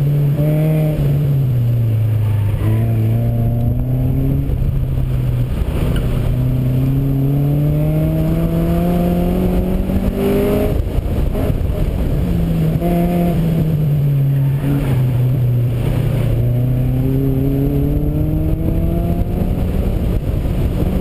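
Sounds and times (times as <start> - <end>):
car engine revving: 0.0 - 21.0
wind noise: 0.0 - 21.0.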